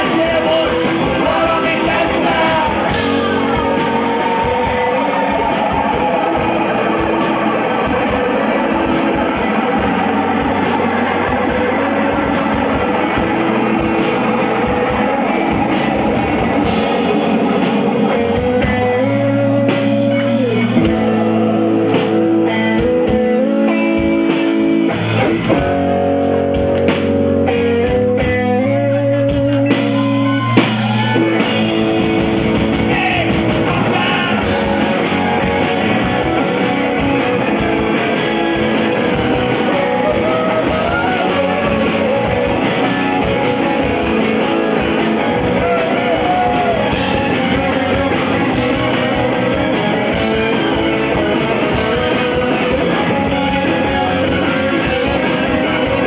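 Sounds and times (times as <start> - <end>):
picked guitar notes: 0.0 - 56.0
rock band playing: 0.0 - 56.0.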